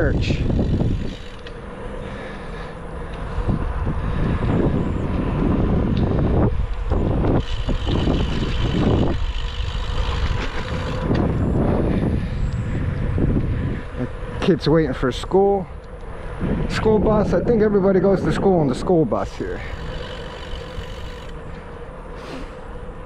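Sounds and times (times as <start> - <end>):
wind buffeting microphone: 0.0 - 21.8.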